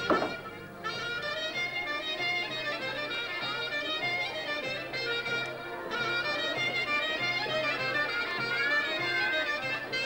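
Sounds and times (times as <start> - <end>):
clarinet-like melody: 0.0 - 10.0.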